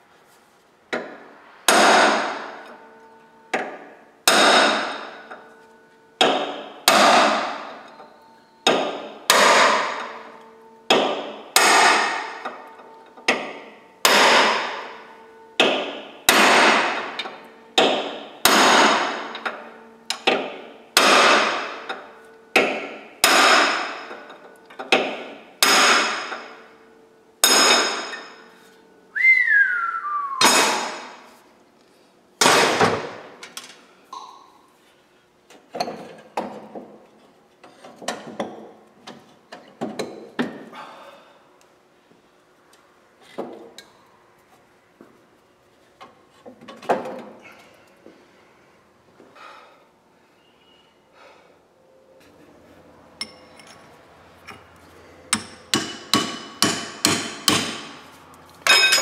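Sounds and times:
hammer striking steel punch: 0.9s - 2.8s, 3.5s - 5.4s, 6.2s - 7.9s, 8.6s - 12.7s, 13.3s - 22.0s, 22.6s - 24.3s, 24.9s - 26.7s, 27.4s - 28.5s, 30.4s - 31.3s, 32.4s - 33.3s, 55.3s - 58.0s.

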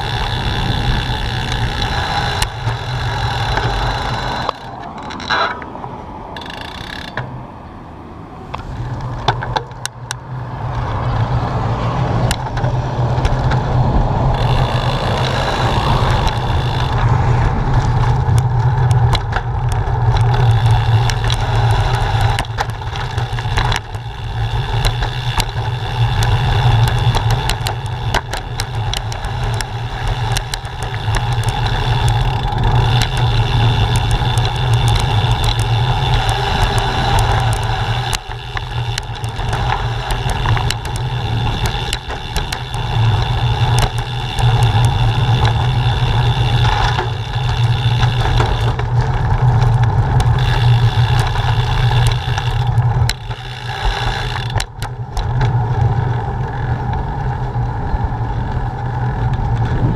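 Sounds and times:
bicycle rattles and knocks: 0.0s - 7.6s, 8.4s - 59.9s
bicycle rumbling over concrete: 0.0s - 59.9s.

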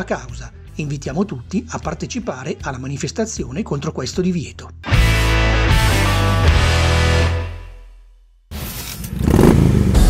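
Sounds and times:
motorcycle engine revving: 8.6s - 10.0s.

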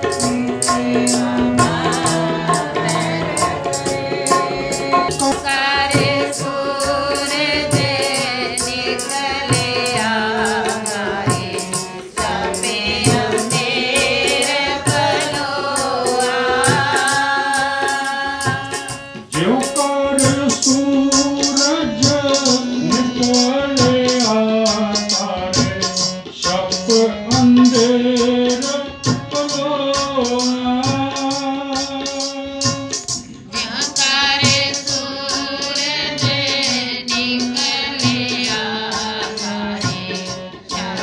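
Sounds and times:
harmonium held notes: 0.0s - 41.0s
man singing: 0.0s - 41.0s.

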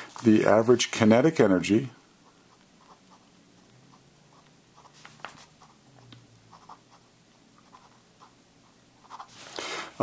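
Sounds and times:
pen scratching on paper: 2.2s - 9.4s.

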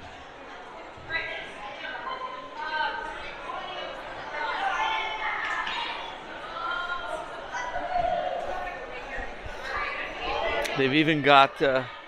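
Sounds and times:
children chattering in hall: 0.0s - 12.0s.

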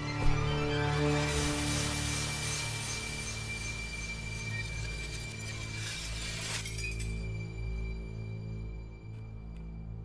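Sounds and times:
low music drone: 0.0s - 10.0s
glass shattering: 2.6s - 7.3s.

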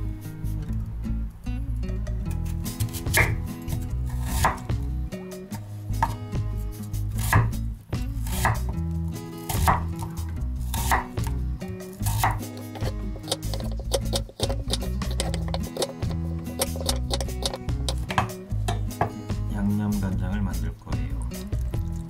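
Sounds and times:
knife chopping on wooden board: 2.8s - 3.4s, 4.1s - 4.7s, 7.2s - 7.6s, 8.3s - 8.8s, 9.5s - 10.1s, 10.7s - 11.3s, 12.0s - 19.2s.

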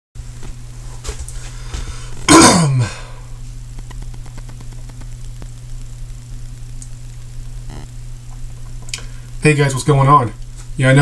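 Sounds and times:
steady low hum: 0.2s - 11.0s
faint ticks: 3.7s - 9.4s.

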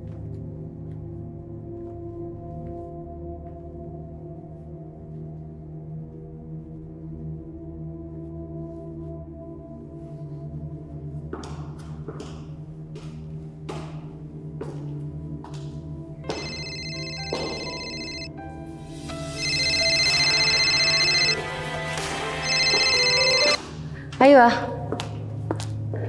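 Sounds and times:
suspense music with low drone: 0.0s - 26.0s
phone ringtone: 16.3s - 18.3s, 19.3s - 21.6s, 22.4s - 23.6s.

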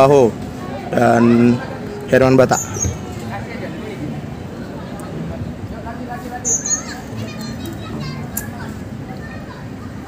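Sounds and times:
low background noise: 0.0s - 10.0s
distant children shouting: 0.6s - 5.4s, 6.3s - 10.0s.

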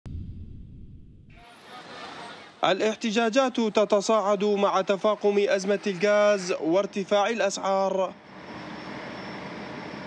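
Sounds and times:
continuous machine-like noise: 1.4s - 10.0s
faint high whine: 7.1s - 10.0s.

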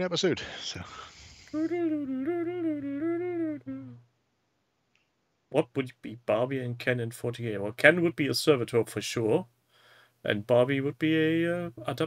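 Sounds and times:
man humming a tune: 1.2s - 4.0s.

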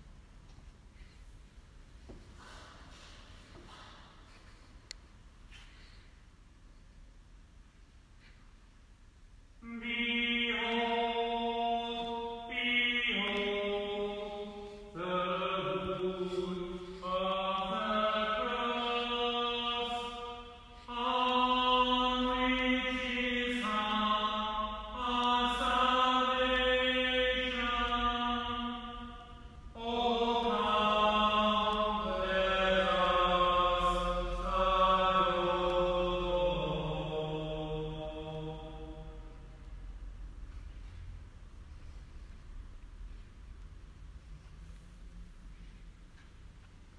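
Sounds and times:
person chanting: 9.6s - 39.9s.

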